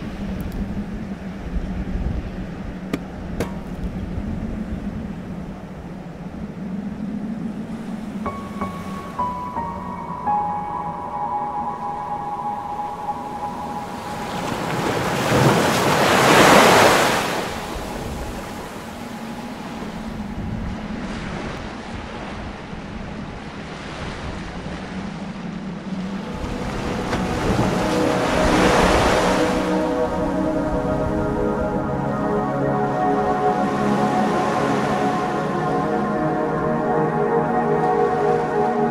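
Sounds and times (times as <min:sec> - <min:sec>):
faint sustained tones: 0:00.0 - 0:21.8, 0:25.4 - 0:38.9
swells of wave-like noise: 0:04.2 - 0:21.6, 0:25.7 - 0:38.9.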